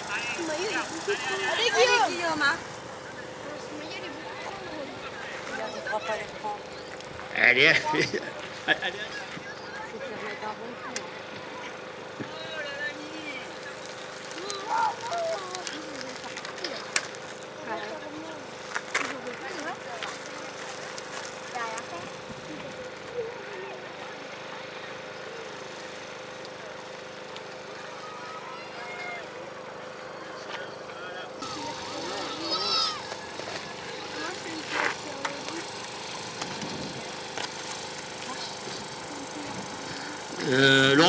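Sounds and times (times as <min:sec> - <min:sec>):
background voices talking: 0:00.0 - 0:41.0.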